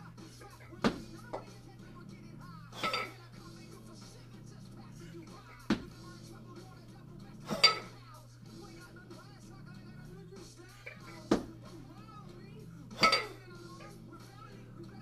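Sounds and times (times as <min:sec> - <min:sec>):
kettlebells clanking together: 0:02.8 - 0:03.2, 0:07.5 - 0:08.0, 0:12.9 - 0:13.4.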